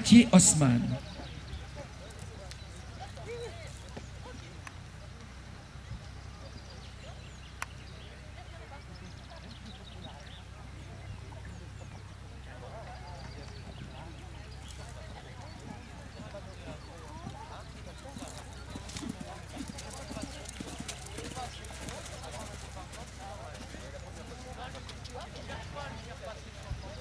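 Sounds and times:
indistinct background voices: 0.0s - 27.0s
horse hoofbeats cantering on sand: 11.4s - 27.0s.

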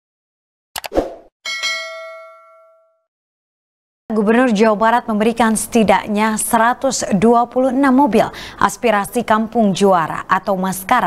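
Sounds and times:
bright notification ding: 1.5s - 3.0s.

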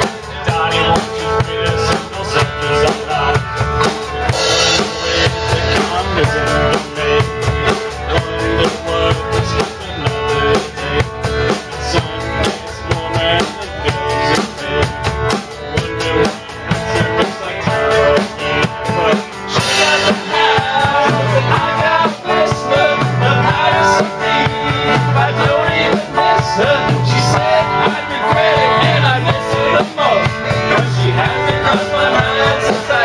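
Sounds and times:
bass guitar: 0.0s - 33.0s
drum kit beating: 0.0s - 33.0s
electric guitar: 0.0s - 33.0s.

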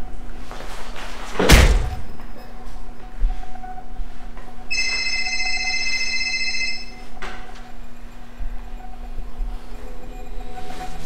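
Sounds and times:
low steady hum: 0.0s - 11.0s
high electronic tone: 2.0s - 11.0s.

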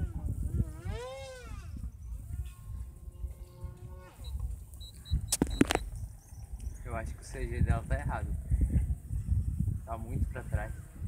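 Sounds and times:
model airplane engine: 0.0s - 4.8s
short high beeps: 4.2s - 5.9s
sharp clicks: 4.4s - 5.9s.

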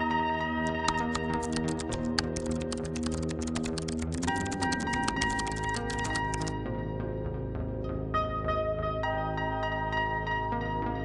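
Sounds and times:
calm background music: 0.0s - 11.0s
rapid light clicks: 0.7s - 6.5s.

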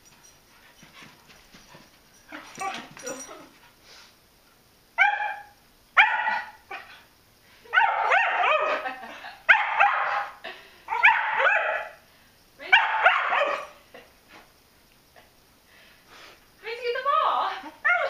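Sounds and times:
dog barking: 5.0s - 6.9s, 7.7s - 8.9s, 9.5s - 12.0s, 12.7s - 13.8s.

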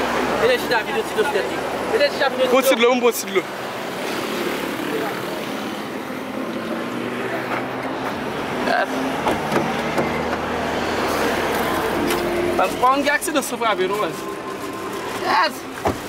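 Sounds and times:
open-air noise: 0.0s - 16.0s.

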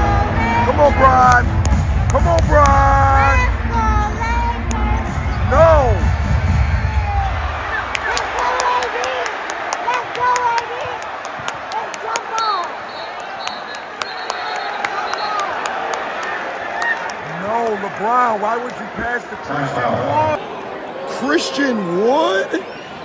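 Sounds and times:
arena crowd din: 0.0s - 23.0s.

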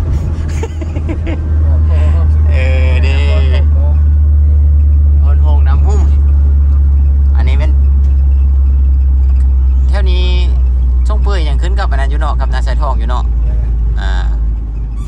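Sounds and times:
van engine and tyres droning: 0.0s - 15.0s
voices: 0.0s - 15.0s.

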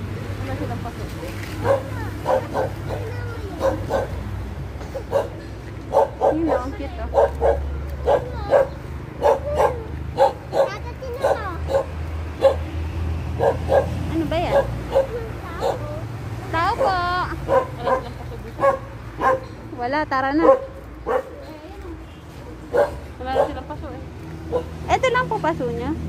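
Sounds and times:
dog barking: 1.6s - 4.2s, 4.9s - 12.7s, 13.4s - 16.0s, 16.7s - 19.6s, 20.4s - 21.4s, 22.7s - 23.7s, 24.5s - 24.8s
dog yelping: 1.6s - 4.2s, 4.9s - 12.7s, 13.4s - 16.0s, 16.8s - 19.6s, 20.4s - 21.4s, 22.7s - 23.6s, 24.5s - 24.8s.

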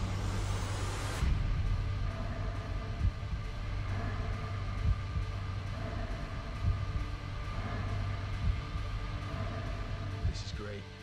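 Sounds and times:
faint sustained tones: 0.0s - 11.0s
low rumbling drone: 0.0s - 11.0s.

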